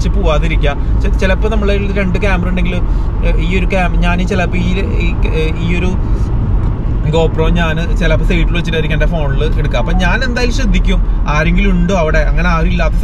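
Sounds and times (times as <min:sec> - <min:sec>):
man talking: 0:00.0 - 0:06.0, 0:07.1 - 0:13.0
car road and engine rumble: 0:00.0 - 0:13.0.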